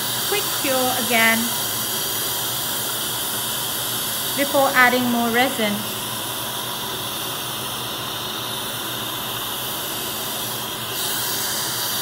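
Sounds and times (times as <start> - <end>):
dental suction hissing: 0.0 - 12.0.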